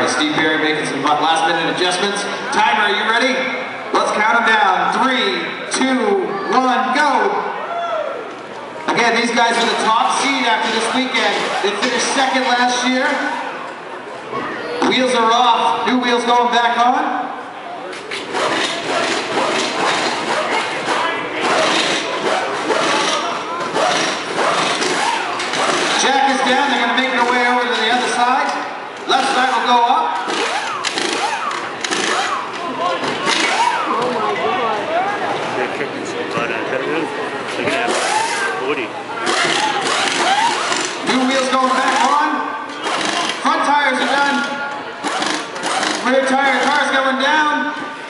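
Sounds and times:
voices: 0.0 - 47.8
crowd shouting and chatter: 0.0 - 48.0
pneumatic impact wrenches whirring: 9.5 - 13.5, 18.0 - 34.2, 37.7 - 38.6, 39.2 - 47.2.

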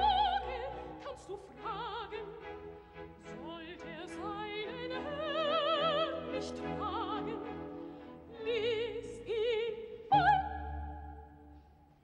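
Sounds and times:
orchestra playing: 0.0 - 11.7.

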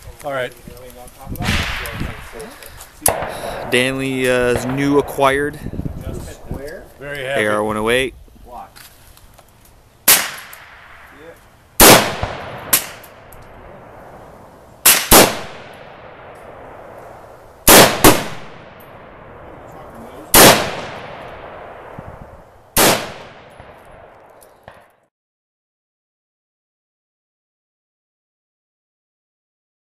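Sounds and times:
rifle shots with echo: 1.4 - 6.0, 10.1 - 11.1, 11.8 - 14.2, 14.8 - 22.0, 22.8 - 24.9.

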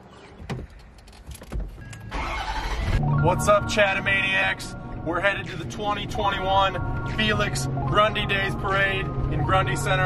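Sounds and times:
truck engine starting: 1.8 - 10.0.

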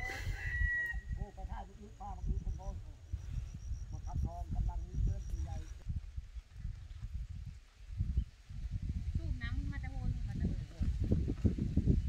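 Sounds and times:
rooster crowing: 0.0 - 1.2.

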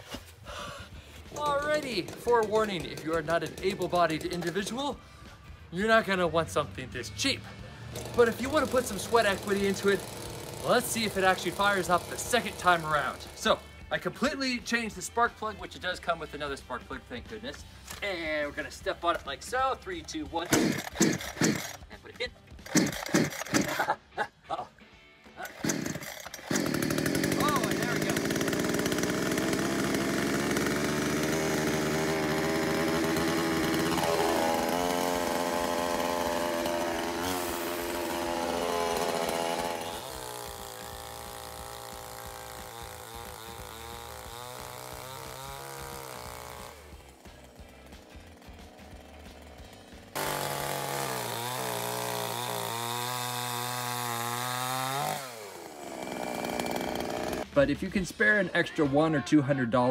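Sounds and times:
chainsaw running: 0.5 - 6.2, 6.8 - 24.0, 25.2 - 57.6.

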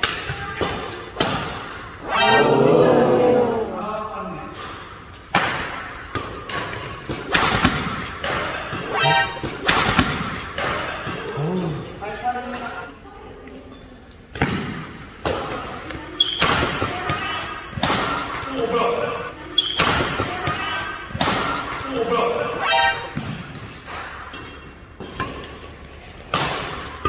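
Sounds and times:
racket hitting shuttlecock: 23.2 - 27.0.

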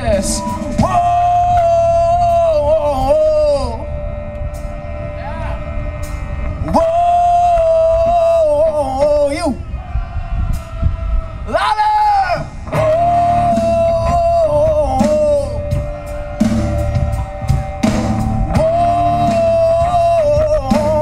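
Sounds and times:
person singing long notes: 0.0 - 9.6, 12.7 - 17.6, 18.2 - 21.0
bass guitar: 0.0 - 11.5, 12.4 - 21.0.

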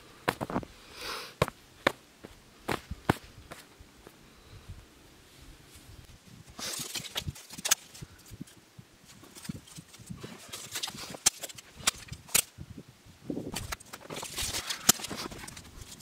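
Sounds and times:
wood scraping rustle: 5.6 - 12.5, 13.5 - 16.0
wooden sticks clacking: 6.6 - 12.5, 13.5 - 16.0.

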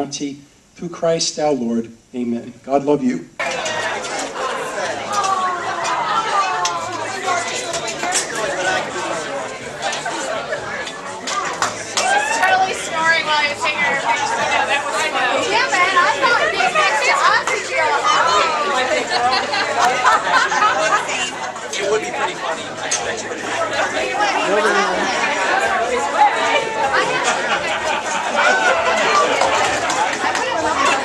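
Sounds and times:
crowd chattering: 2.2 - 31.0.

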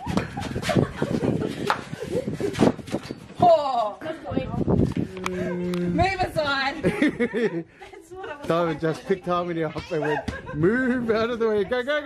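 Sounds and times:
people laughing and shrieking: 0.0 - 2.8, 9.8 - 10.8.

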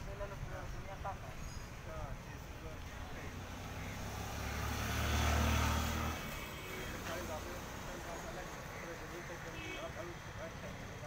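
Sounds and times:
low engine hum: 2.0 - 9.2.

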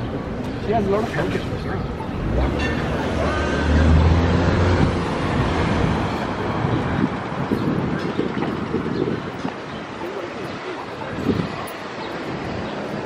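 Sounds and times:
road noise: 0.0 - 13.0.

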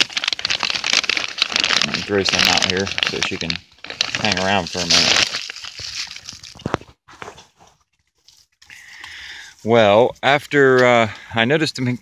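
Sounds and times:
plastic bag crinkling: 0.0 - 7.0.

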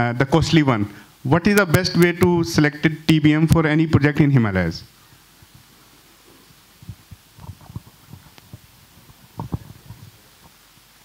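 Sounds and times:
microphone handling thumps: 6.8 - 10.6.

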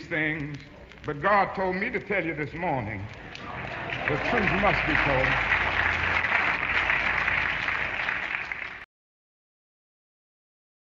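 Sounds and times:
audience applause: 3.1 - 8.9.

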